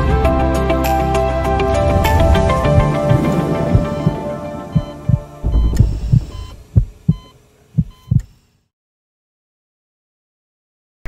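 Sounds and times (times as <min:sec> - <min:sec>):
intro music: 0:00.4 - 0:07.2
heartbeat thumps: 0:02.2 - 0:08.3.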